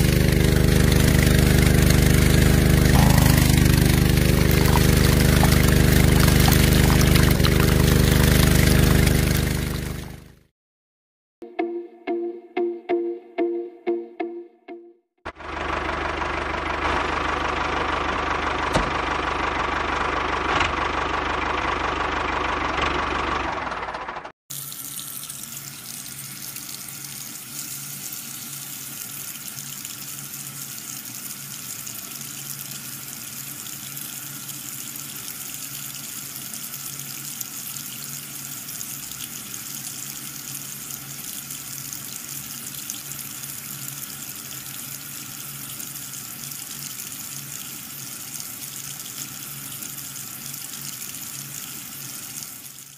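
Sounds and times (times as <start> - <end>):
water from hose splashing on soil: 0.0 - 10.3, 24.5 - 52.9
small motor running: 0.0 - 10.4.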